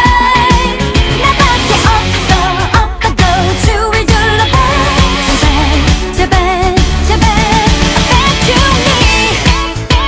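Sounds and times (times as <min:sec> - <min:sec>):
person singing with vibrato: 0:00.0 - 0:09.5
drums and bass beat: 0:00.0 - 0:10.0.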